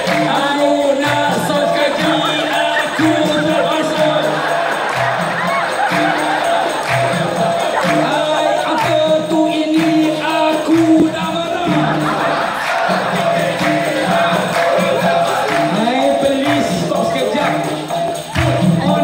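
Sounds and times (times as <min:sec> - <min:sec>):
chorus clapping: 0:00.0 - 0:19.0
crowd noise: 0:00.0 - 0:19.0.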